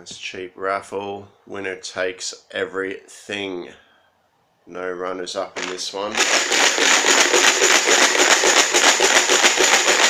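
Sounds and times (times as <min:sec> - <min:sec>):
raffle pieces rattling in plastic box: 0:05.6 - 0:10.0.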